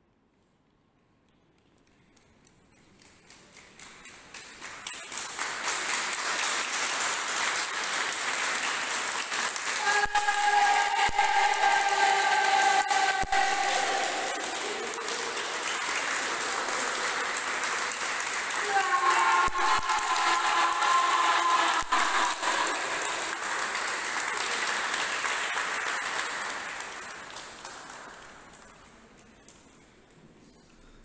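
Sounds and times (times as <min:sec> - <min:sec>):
crowd applauding: 0:03.3 - 0:29.7
group shouting: 0:09.8 - 0:15.1, 0:18.6 - 0:23.1.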